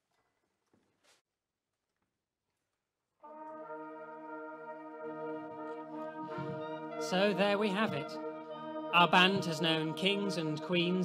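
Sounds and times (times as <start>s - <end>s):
brass band sustained chord: 3.2s - 11.0s.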